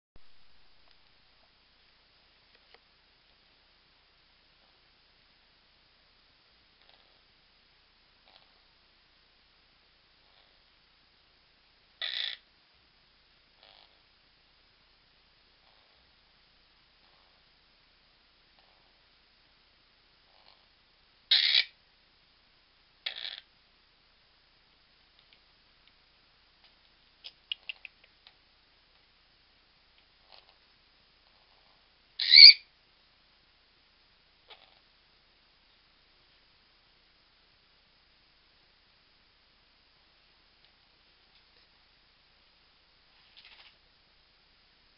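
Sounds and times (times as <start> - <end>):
parakeet harsh call: 12.0 - 12.4, 21.3 - 21.8, 23.0 - 23.4, 32.2 - 32.6.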